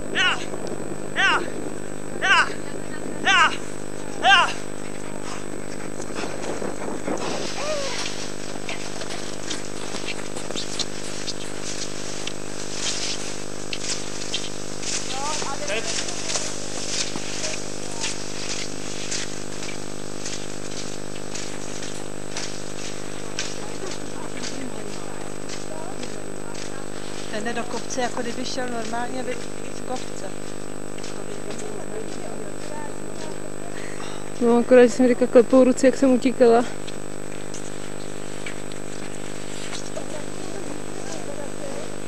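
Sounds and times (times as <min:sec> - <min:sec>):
steady multi-tone hum: 0:00.0 - 0:42.0.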